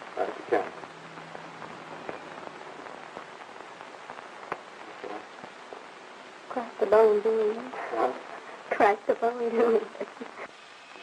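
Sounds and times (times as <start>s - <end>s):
film soundtrack hiss: 0.0s - 11.0s
clicks and crackles: 0.2s - 6.0s.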